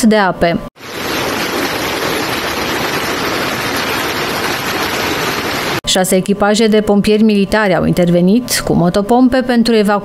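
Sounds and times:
floodwater rushing over road: 0:00.8 - 0:05.8.

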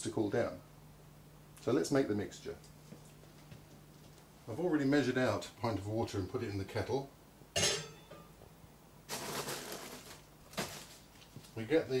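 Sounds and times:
plastic bag rustling: 0:09.1 - 0:11.6.

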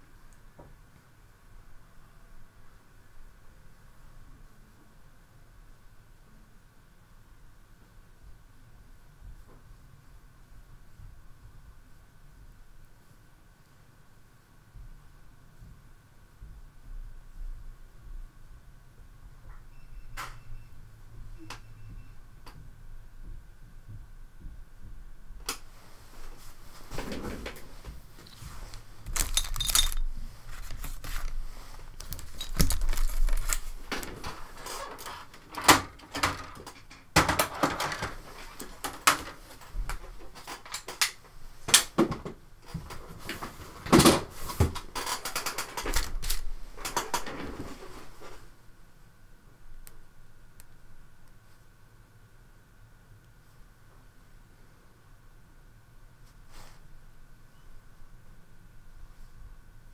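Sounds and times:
faint hum: 0:00.0 - 0:59.9
paper rustling: 0:26.3 - 0:35.3.

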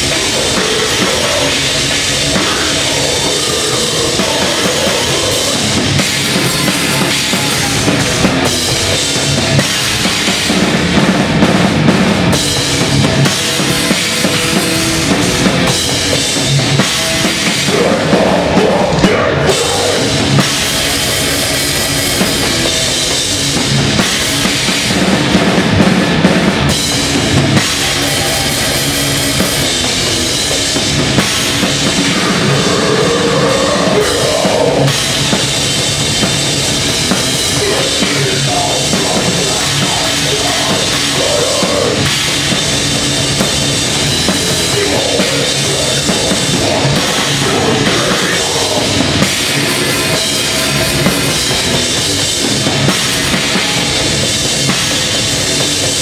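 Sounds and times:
death metal band playing live: 0:00.0 - 0:56.0
distorted electric guitars: 0:00.0 - 0:56.0.

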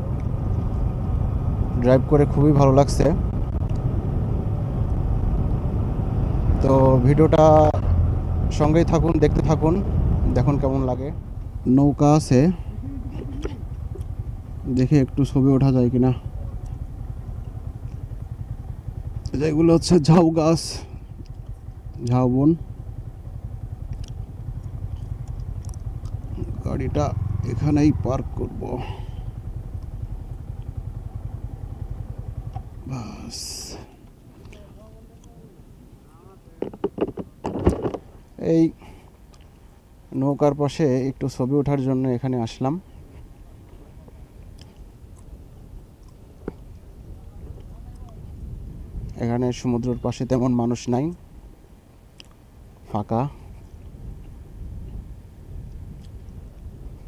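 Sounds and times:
motorcycle engine rumble: 0:00.0 - 0:57.0
tyre and wind noise: 0:36.5 - 0:38.2, 0:43.0 - 0:49.9, 0:53.5 - 0:57.0.

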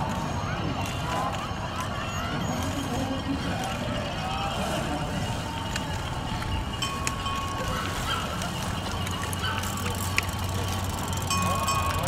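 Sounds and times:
bells ringing: 0:00.0 - 0:12.0
bikes riding through sand: 0:00.0 - 0:12.0
spectators' voices: 0:00.0 - 0:12.0.

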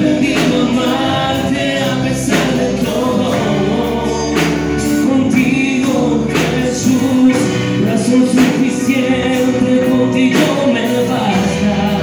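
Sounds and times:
band with electric guitar: 0:00.0 - 0:12.0
voices singing worship music: 0:00.0 - 0:12.0.

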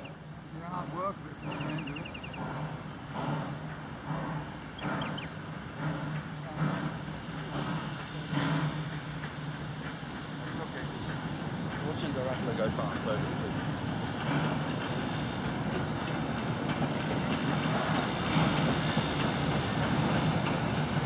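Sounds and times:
steam locomotive exhaust beats: 0:00.0 - 0:21.0
bird chirping: 0:01.4 - 0:03.0, 0:03.7 - 0:07.0.

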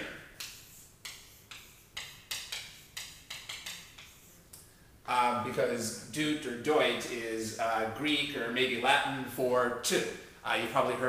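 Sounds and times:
chalk tapping on chalkboard: 0:00.4 - 0:04.5.

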